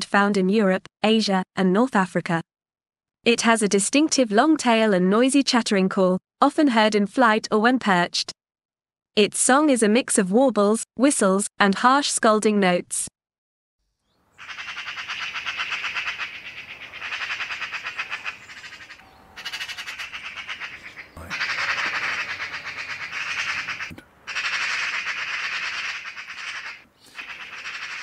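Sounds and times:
magpie chattering: 14.4s - 28.0s.

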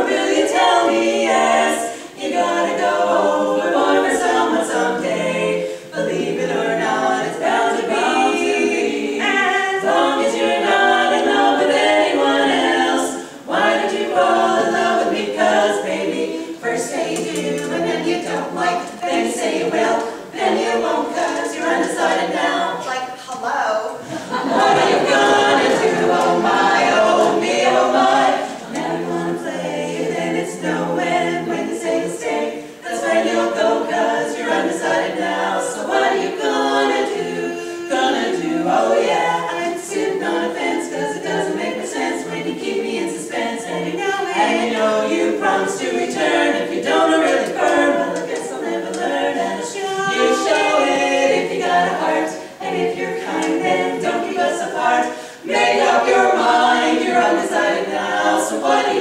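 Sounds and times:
women singing in harmony: 0.0s - 59.0s.

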